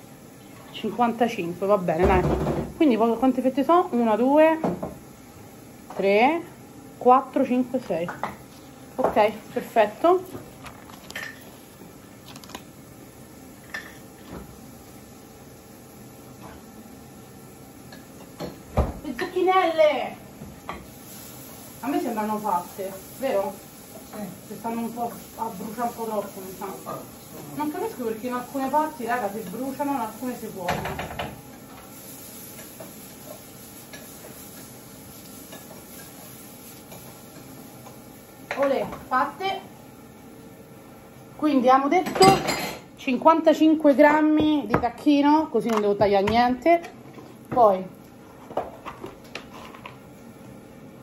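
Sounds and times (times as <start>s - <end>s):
zucchini sizzling in a pan: 0.0s - 50.6s
dishes and utensils clattering: 42.0s - 42.9s.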